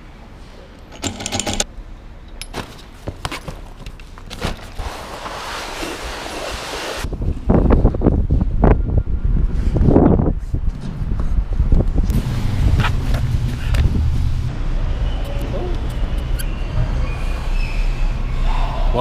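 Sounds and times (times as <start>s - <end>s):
wrench clicks and metallic clinks: 0.9s - 1.7s
wind rumbling on microphone: 6.1s - 17.2s.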